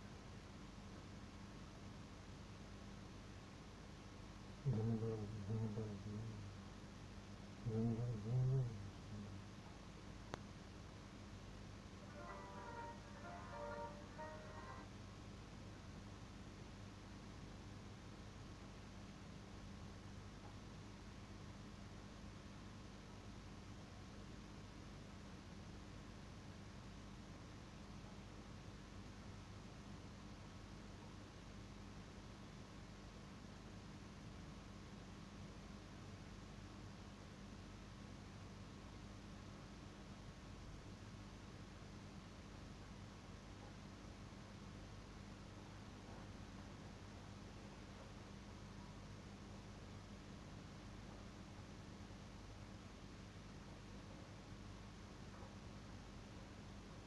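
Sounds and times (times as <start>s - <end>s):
steady low hum: 0.0s - 16.3s
high short musical notes: 12.0s - 14.8s.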